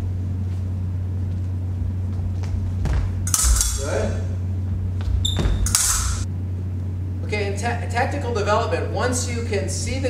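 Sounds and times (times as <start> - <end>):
steady low hum: 0.0 - 10.0
footsteps on wooden floor: 0.4 - 3.7, 4.6 - 5.8
fencing blades clashing: 3.2 - 4.2, 5.2 - 6.3.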